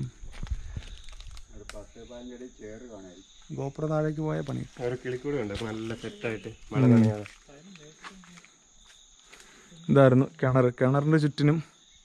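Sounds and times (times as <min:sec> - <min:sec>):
forest insects droning: 0:00.0 - 0:12.0
man's voice: 0:01.8 - 0:07.4.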